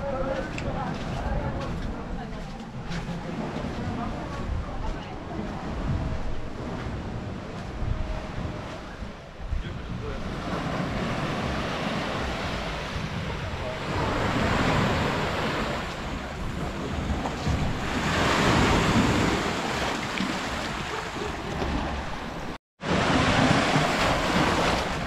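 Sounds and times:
wind buffeting microphone: 0.0 - 25.0
small waves washing on sand: 9.9 - 25.0.

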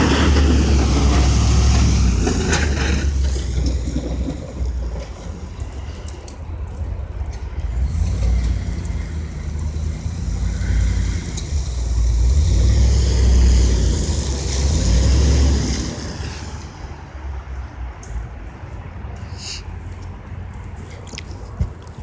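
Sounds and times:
truck driving past on slush: 0.0 - 6.3, 7.6 - 17.0.

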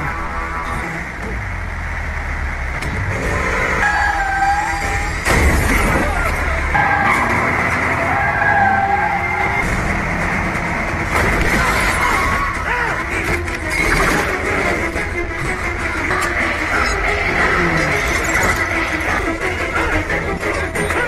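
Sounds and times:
dramatic score music: 0.0 - 21.0
heavy vehicle engines: 0.0 - 21.0.

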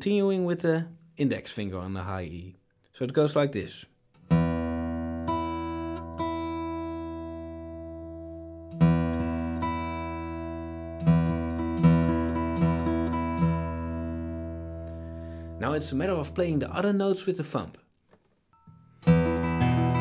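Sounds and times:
acoustic guitar fingerpicking: 4.1 - 16.1, 18.6 - 20.0.

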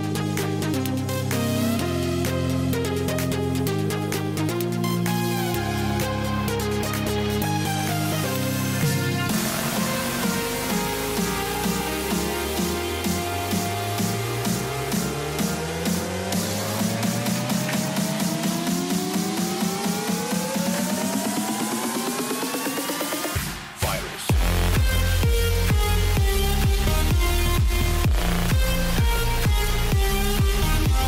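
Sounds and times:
deep bass: 0.0 - 21.5, 24.3 - 31.0
electronic dance music: 0.0 - 31.0
rising synth sweeps: 0.2 - 31.0.

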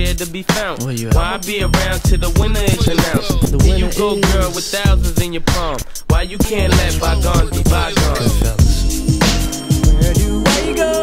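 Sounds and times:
rapping over a bass-heavy beat: 0.0 - 11.0.

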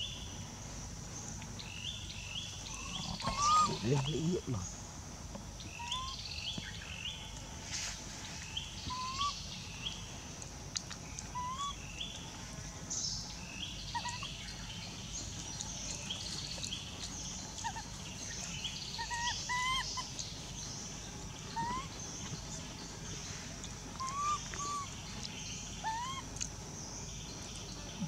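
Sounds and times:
birds chirping: 0.0 - 7.4, 8.4 - 28.0
steady high hiss: 0.0 - 28.0.

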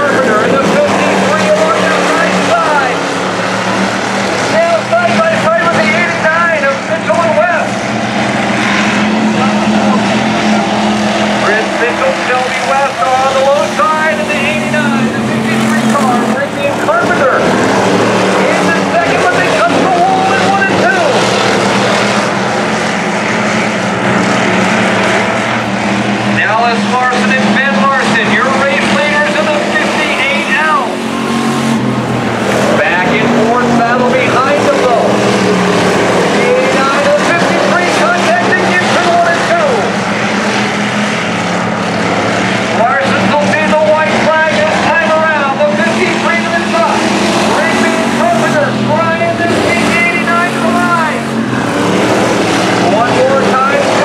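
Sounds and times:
people's voices: 0.0 - 41.0, 42.0 - 54.0
race car engines: 0.0 - 54.0.

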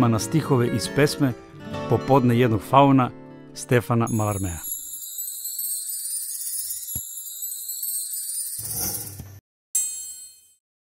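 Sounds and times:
high shimmering chime music: 4.1 - 9.2.

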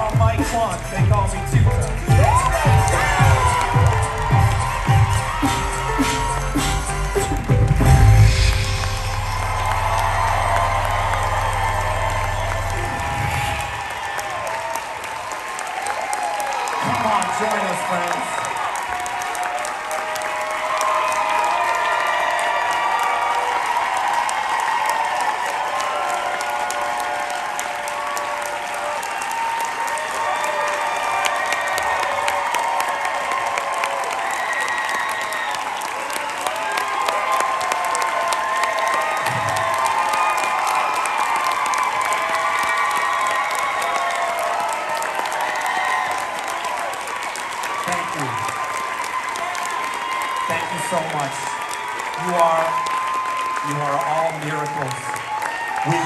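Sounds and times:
voices cheering and shouting: 0.0 - 7.4, 9.1 - 46.9, 47.6 - 56.0
audience clapping: 0.0 - 56.0.

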